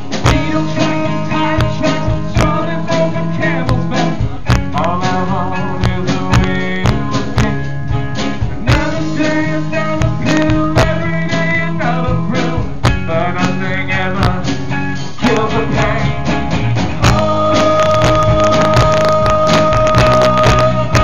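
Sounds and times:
acoustic guitar: 0.0s - 21.0s
live band playing blues-rock: 0.0s - 21.0s
person singing: 0.2s - 7.6s, 8.6s - 16.4s, 17.0s - 21.0s.

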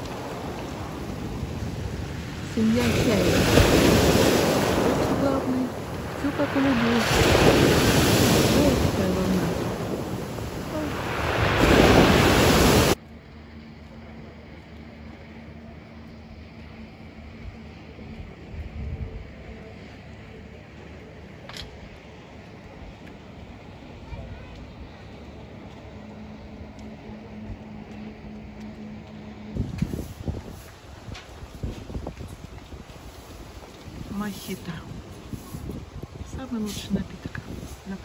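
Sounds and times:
waves breaking on pebbles: 0.0s - 13.0s
wind on microphone: 0.0s - 13.0s, 18.2s - 19.4s, 29.5s - 38.0s.

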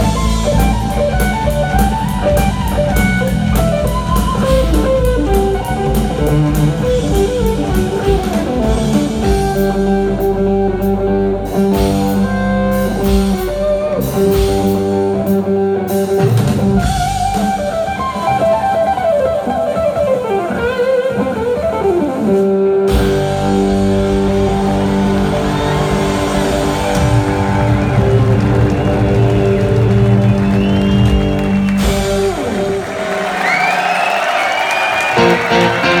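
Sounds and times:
electric guitar bending notes: 0.0s - 32.9s, 35.0s - 36.0s
bass guitar: 0.0s - 33.6s, 35.0s - 36.0s
drum kit: 0.0s - 36.0s.

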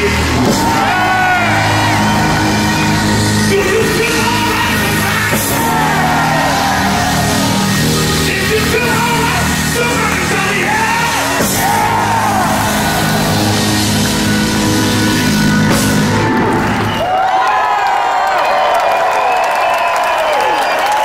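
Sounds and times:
blues band holding chord: 0.0s - 17.0s
audience cheering and clapping: 0.0s - 21.0s.

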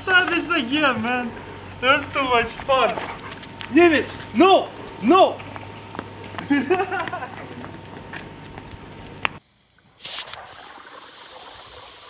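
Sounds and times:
steady air hiss: 0.0s - 2.8s, 8.8s - 12.0s
air bubbling through water: 10.0s - 12.0s.

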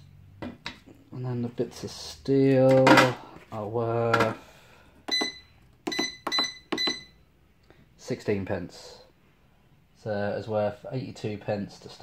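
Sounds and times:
scale keypad beeping: 5.1s - 7.2s.

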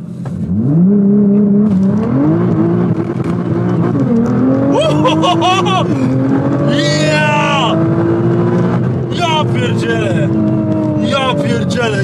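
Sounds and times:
car engine revving and accelerating: 0.0s - 12.0s.

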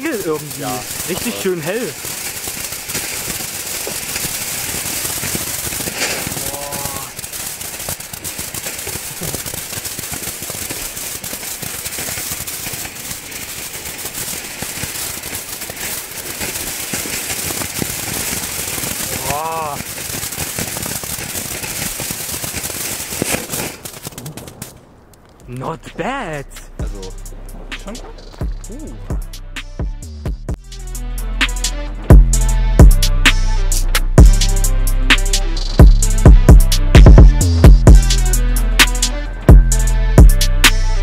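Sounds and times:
firework fountain hissing and crackling: 0.0s - 24.9s, 25.6s - 29.8s, 30.6s - 41.0s.

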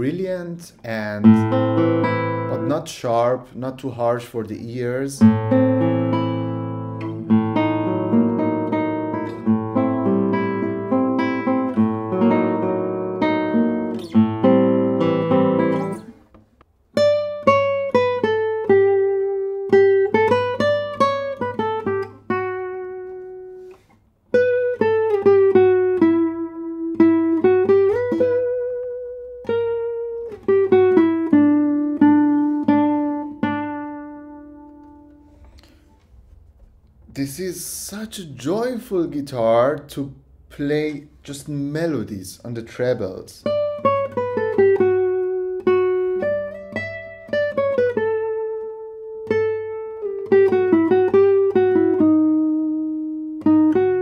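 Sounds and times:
classical guitar fingerstyle: 0.8s - 3.4s, 5.2s - 37.1s, 42.1s - 54.0s.

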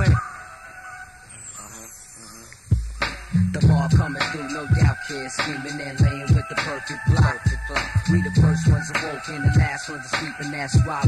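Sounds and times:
hip-hop beat: 0.0s - 11.0s
heavy bass kick: 2.8s - 4.2s, 7.1s - 9.7s.

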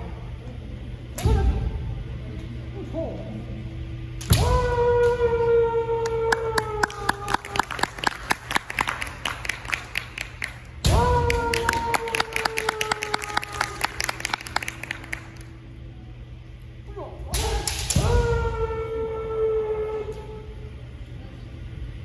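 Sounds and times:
bamboo swords clattering: 17.3s - 18.6s.

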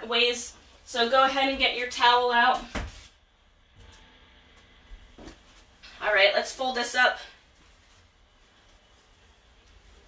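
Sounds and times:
soft handling noises: 7.4s - 10.0s.

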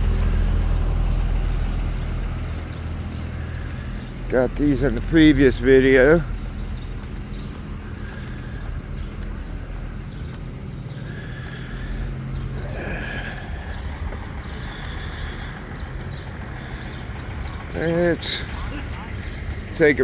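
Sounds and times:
engine idling hum: 0.0s - 20.0s
faint outdoor background: 0.0s - 20.0s.

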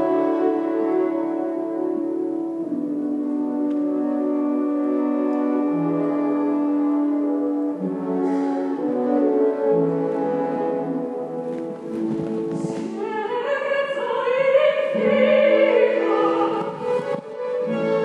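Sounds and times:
orchestra playing held chords: 0.0s - 13.0s.

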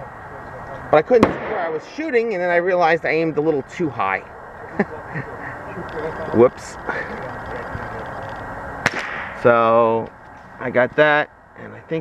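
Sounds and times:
steady outdoor hiss: 0.0s - 12.0s
distant gunshot: 1.2s - 1.9s, 8.8s - 9.4s.

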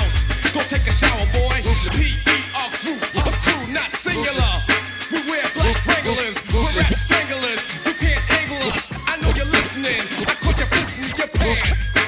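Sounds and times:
heavy bass kick: 0.0s - 2.3s, 6.5s - 7.1s, 9.2s - 9.5s, 11.4s - 12.0s
rapping over a beat: 0.0s - 12.0s.

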